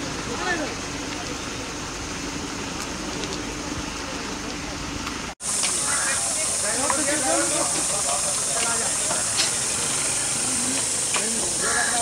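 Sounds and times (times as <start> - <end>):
faint voices talking: 2.9 - 12.0
high-pitched hiss: 5.4 - 12.0.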